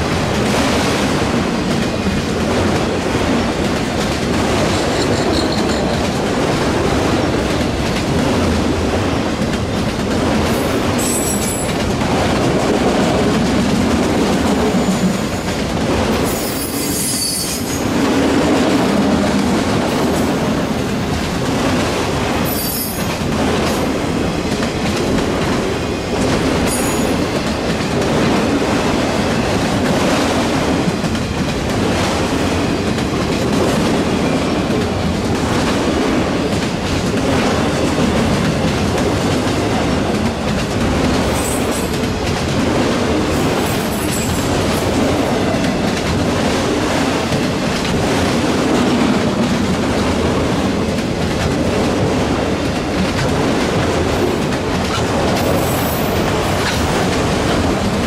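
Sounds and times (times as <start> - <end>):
freight train wheels rumbling: 0.0 - 58.0.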